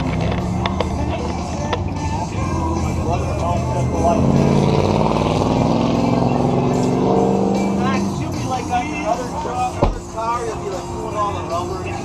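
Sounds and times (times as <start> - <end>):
car engine running: 0.0 - 12.0
music: 0.0 - 12.0
voices: 0.0 - 12.0.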